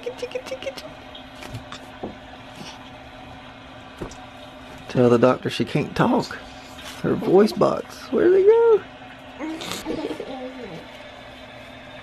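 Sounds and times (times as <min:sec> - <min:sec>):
child cooing: 0:09.4 - 0:10.9.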